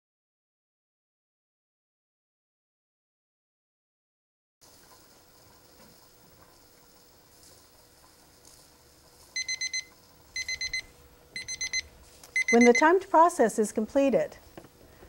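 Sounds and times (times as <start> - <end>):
kitchen timer beeping: 9.4 - 13.1.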